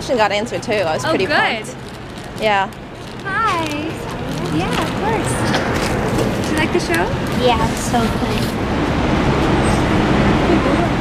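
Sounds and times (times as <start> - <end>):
city street traffic rumble: 0.0 - 11.0
indistinct crowd voices: 0.0 - 11.0.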